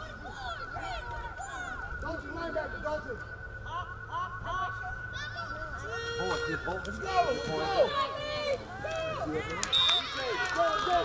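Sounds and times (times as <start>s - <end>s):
people shouting and yelling: 0.0s - 11.0s
high whistle: 9.6s - 10.2s.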